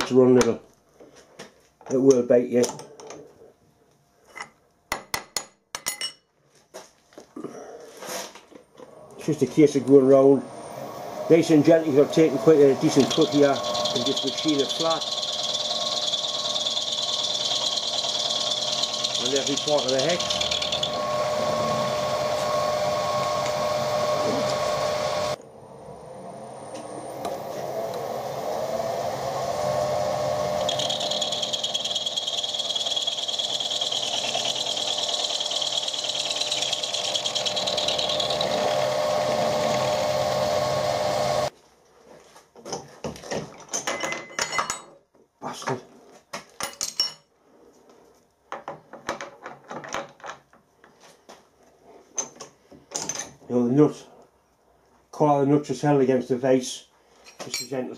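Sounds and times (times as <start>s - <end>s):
milling machine whining: 8.9s - 41.5s.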